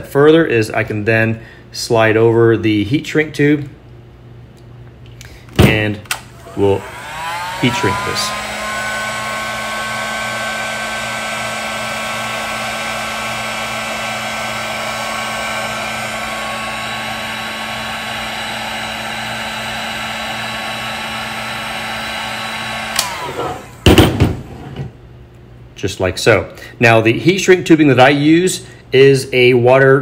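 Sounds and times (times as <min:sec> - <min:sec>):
heat gun fan whine: 0:05.4 - 0:24.9, 0:27.2 - 0:29.3.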